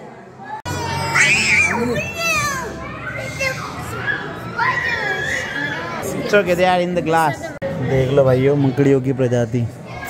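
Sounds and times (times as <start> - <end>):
children talking and calling out: 0.3 - 9.0.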